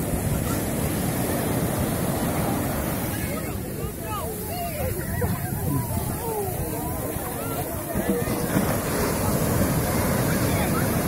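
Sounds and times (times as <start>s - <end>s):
waves breaking on sandy beach: 0.0s - 11.0s
wind rumbling on microphone: 0.0s - 11.0s.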